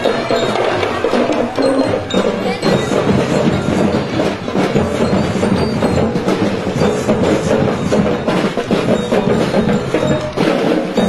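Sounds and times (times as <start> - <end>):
marching band drums: 0.0 - 11.0.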